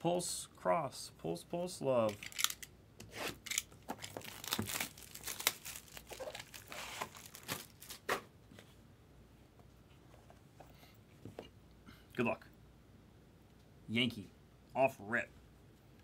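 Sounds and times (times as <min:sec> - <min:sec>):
plastic shrink wrap tearing: 0:03.4 - 0:08.1.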